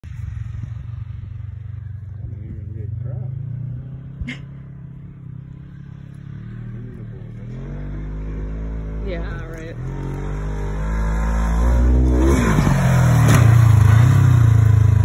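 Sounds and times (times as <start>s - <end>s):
utility vehicle engine running: 0.0s - 15.0s.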